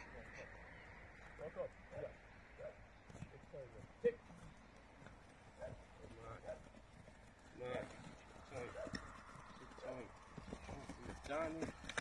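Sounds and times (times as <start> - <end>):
quiet low talking: 0.0 - 12.0.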